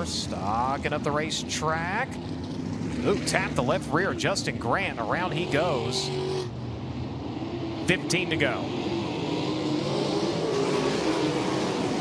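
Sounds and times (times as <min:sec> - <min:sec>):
race car engines: 0:00.0 - 0:12.0.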